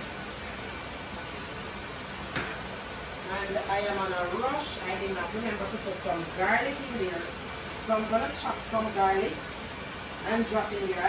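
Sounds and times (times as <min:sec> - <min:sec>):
food sizzling in a frying pan: 0:01.2 - 0:11.0.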